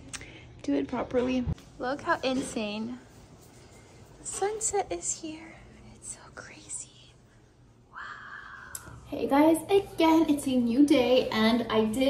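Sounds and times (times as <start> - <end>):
faint whispered voice: 5.1 - 7.3.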